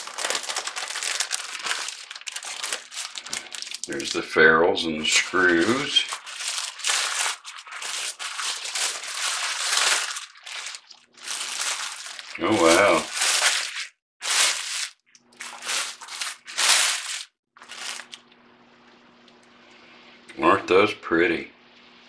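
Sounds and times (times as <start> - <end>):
tissue paper crinkling: 0.0 - 18.2.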